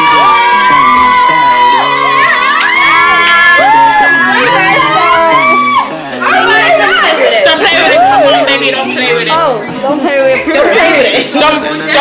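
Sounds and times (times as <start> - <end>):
women shrieking and squealing: 0.0 - 8.5.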